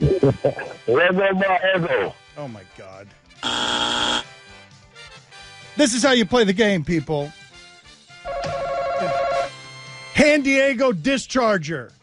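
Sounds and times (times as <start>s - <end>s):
game show buzzer: 3.4s - 4.4s.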